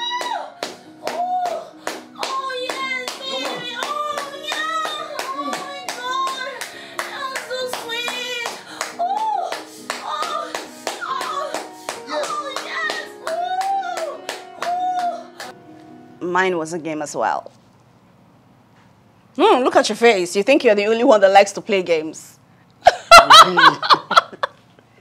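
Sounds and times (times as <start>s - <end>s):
music with sung melody: 0.0s - 16.2s
steady hand claps: 0.2s - 15.6s.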